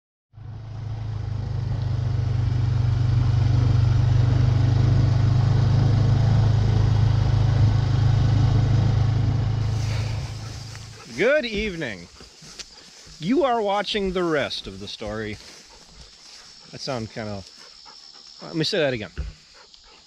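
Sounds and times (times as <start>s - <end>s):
quad bike engine running: 0.4s - 17.0s.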